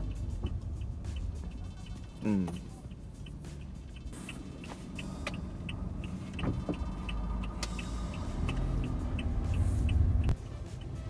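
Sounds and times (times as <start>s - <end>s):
car engine and road rumble: 0.0s - 11.0s
light even ticking: 0.0s - 11.0s.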